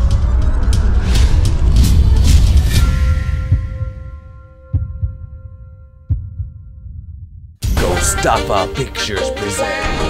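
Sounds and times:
deep heartbeat-like thumps: 0.0 - 7.9
loud music: 7.6 - 10.0.

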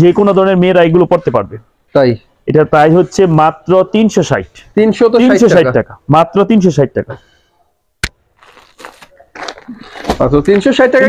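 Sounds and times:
cloth and plastic crinkling: 8.3 - 10.9.

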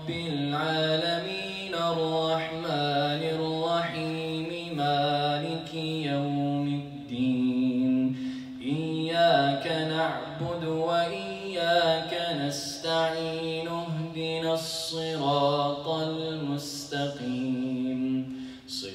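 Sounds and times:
man chanting melodically: 0.0 - 18.9.

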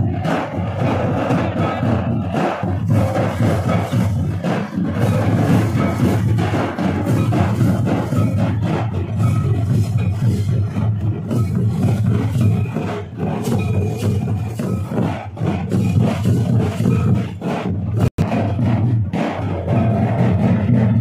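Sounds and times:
barrel drums beating: 0.0 - 21.0
crowd: 0.0 - 21.0.

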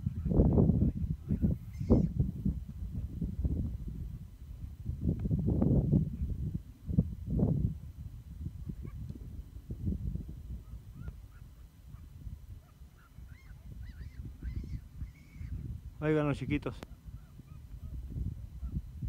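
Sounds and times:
wind rumble on microphone: 0.0 - 19.0
faint arching call: 1.3 - 2.2, 12.6 - 15.6.

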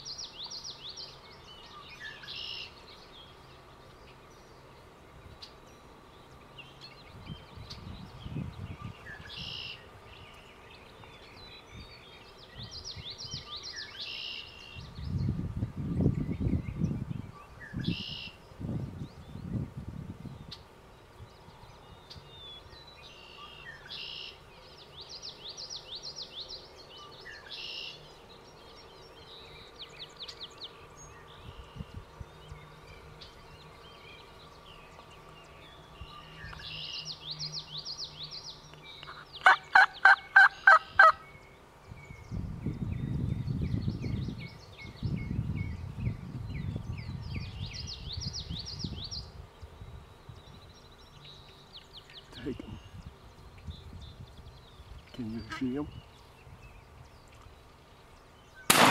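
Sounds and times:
songbirds singing: 0.0 - 58.9
turkey gobbling: 39.1 - 41.2.

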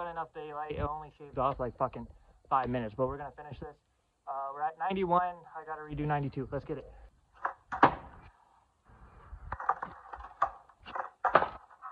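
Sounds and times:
skateboard wheels rolling on concrete: 7.3 - 11.9
skateboard clacks: 7.4 - 8.2, 9.5 - 11.9
handling knocks: 9.5 - 11.9.

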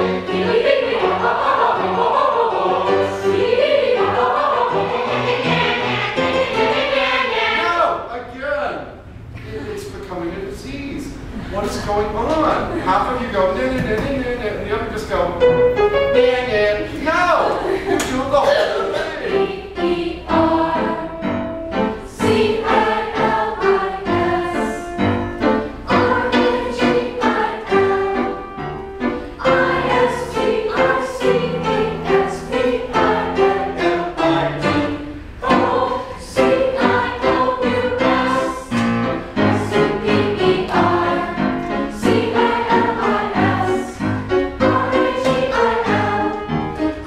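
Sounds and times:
choir singing: 0.0 - 8.1, 18.6 - 47.0.

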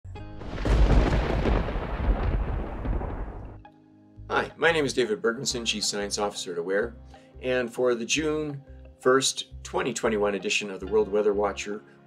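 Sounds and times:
thunder rumbling: 0.4 - 3.6.

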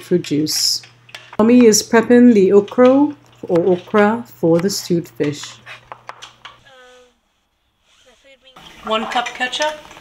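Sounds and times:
person speaking: 0.0 - 5.6, 6.6 - 7.2, 7.9 - 9.8.

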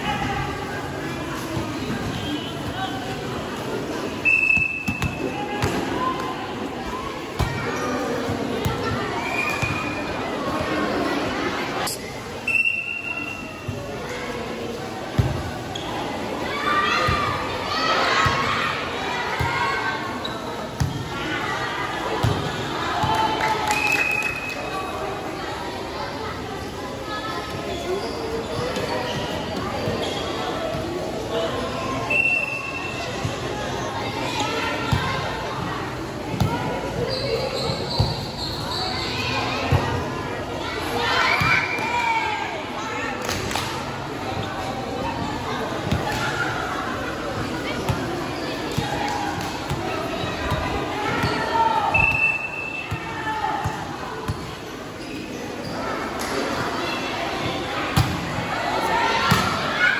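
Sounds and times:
chatter of players and spectators: 0.0 - 59.9.

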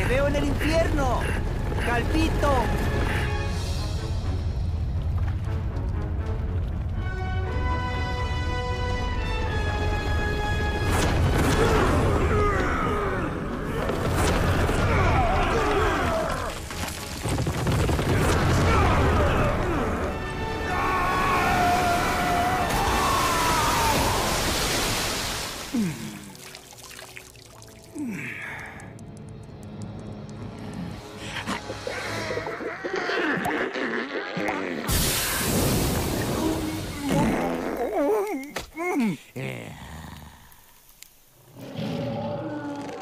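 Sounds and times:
dramatic film score: 0.0 - 24.6, 25.6 - 40.8.

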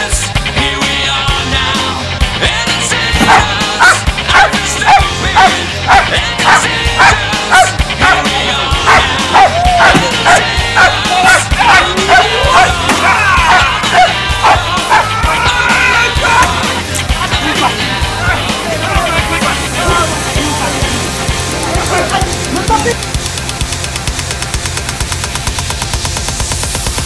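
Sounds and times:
loud rock music: 0.0 - 27.0
dog barking: 3.2 - 15.1.

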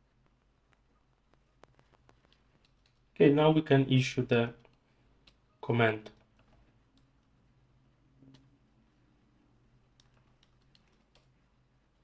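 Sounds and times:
computer keyboard keystrokes: 9.9 - 11.3.

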